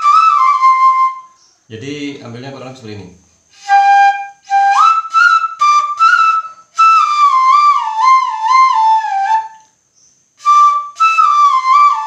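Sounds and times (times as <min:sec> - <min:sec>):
bamboo flute melody: 0:00.0 - 0:01.4, 0:03.5 - 0:09.8, 0:10.4 - 0:12.0.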